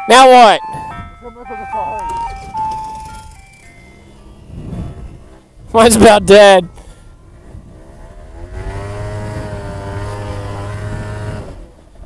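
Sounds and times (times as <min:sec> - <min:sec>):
electronic beeping jingle: 0:00.0 - 0:04.7
small engine revving: 0:02.2 - 0:06.2, 0:07.2 - 0:12.0.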